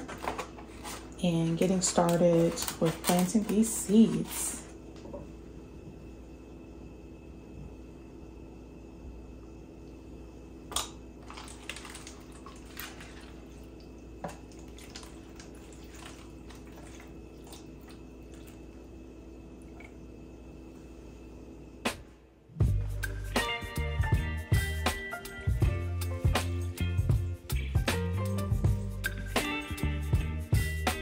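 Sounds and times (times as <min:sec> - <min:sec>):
low room hum: 0:00.0 - 0:31.0
water trickling and dripping: 0:11.2 - 0:18.8.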